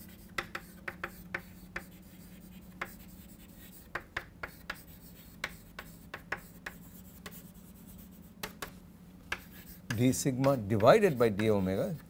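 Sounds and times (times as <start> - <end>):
chalk tapping and scratching: 0.0 - 12.0
steady low hum: 0.0 - 12.0.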